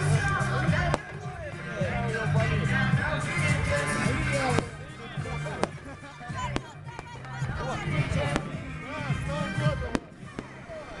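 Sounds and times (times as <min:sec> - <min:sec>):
crowd voices: 0:00.0 - 0:11.0
music: 0:00.0 - 0:11.0.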